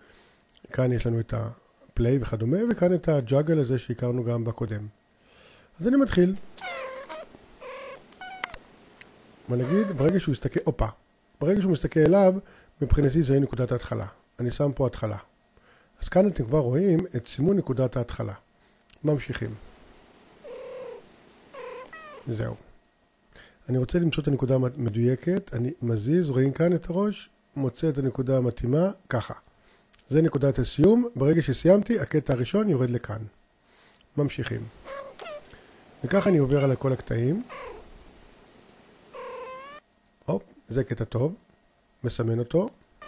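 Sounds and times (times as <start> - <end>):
cats meowing: 6.6 - 8.6, 9.6 - 10.2, 20.4 - 22.3, 34.8 - 38.0, 39.1 - 39.8.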